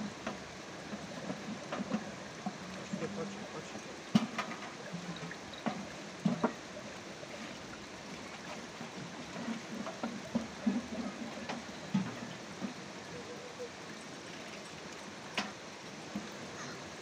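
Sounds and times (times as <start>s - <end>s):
steady background hiss: 0.0s - 17.0s
liquid sloshing in metal bucket: 0.3s - 12.8s.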